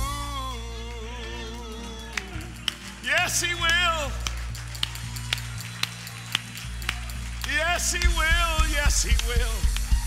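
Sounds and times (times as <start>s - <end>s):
sharp ticks on the beat: 6.9s - 10.0s.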